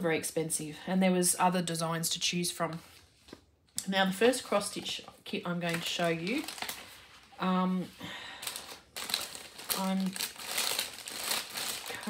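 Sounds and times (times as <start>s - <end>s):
paper and plastic rustling: 4.5s - 7.4s, 8.4s - 12.0s.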